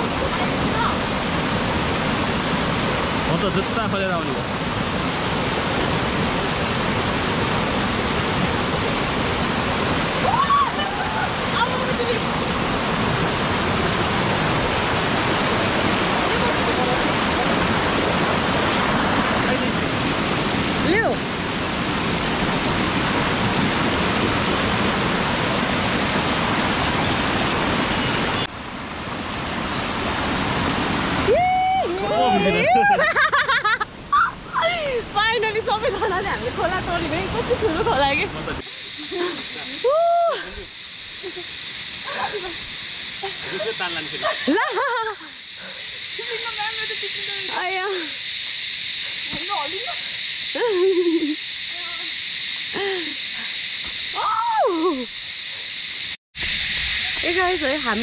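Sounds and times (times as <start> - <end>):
stream rushing over rocks: 0.0 - 39.7
people's voices: 31.3 - 33.1, 43.2 - 48.2.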